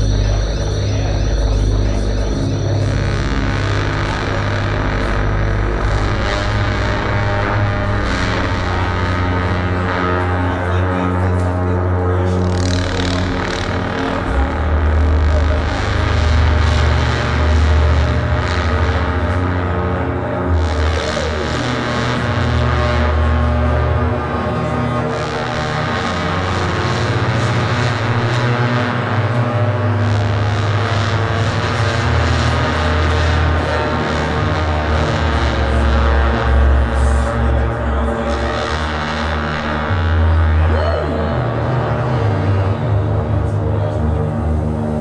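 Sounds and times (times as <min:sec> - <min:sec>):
deep bass: 0:00.0 - 0:45.0
electronic noise drone: 0:00.0 - 0:45.0.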